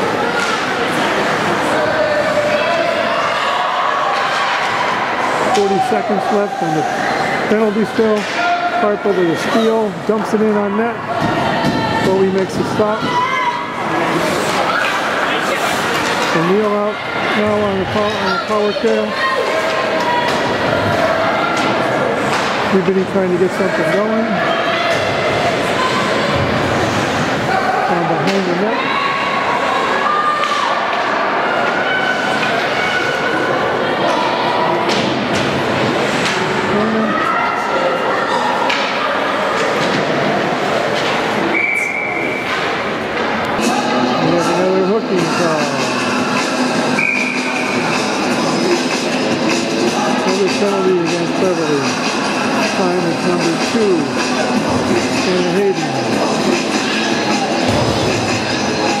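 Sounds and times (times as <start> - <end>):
voices echoing in an ice rink: 0.0 - 59.0.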